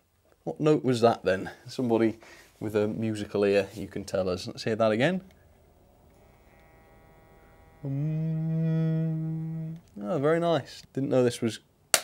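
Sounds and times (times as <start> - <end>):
model train motor whine: 5.8 - 9.8.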